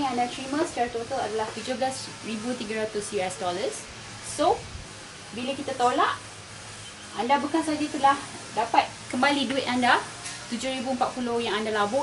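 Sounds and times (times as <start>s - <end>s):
woman speaking: 0.0s - 4.7s, 5.3s - 6.3s, 7.1s - 12.0s.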